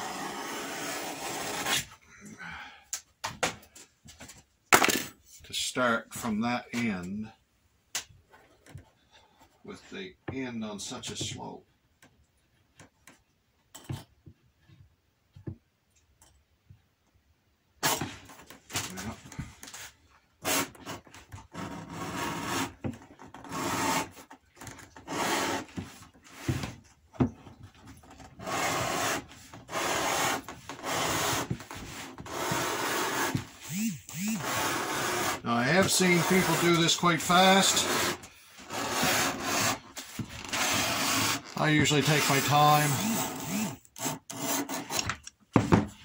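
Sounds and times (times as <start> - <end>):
blade scraping through leather: 0.0 - 1.9, 28.4 - 45.0.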